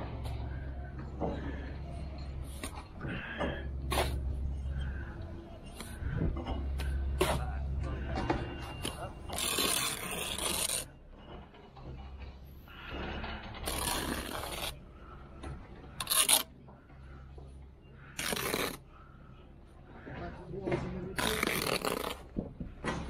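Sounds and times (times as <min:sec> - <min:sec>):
trowel scraping mortar: 0:08.8 - 0:11.0, 0:13.6 - 0:14.8, 0:16.0 - 0:16.5, 0:18.1 - 0:18.9, 0:21.0 - 0:22.3.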